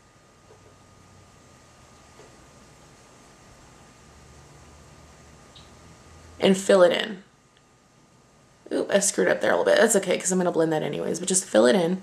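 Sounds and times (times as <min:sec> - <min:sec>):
low hum: 0:00.0 - 0:12.0
thin steady whine: 0:00.0 - 0:12.0.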